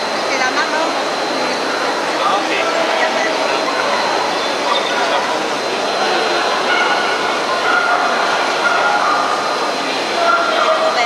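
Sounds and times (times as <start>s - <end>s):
busy hall background noise: 0.0s - 11.0s
dog barking: 6.6s - 9.5s, 10.2s - 11.0s.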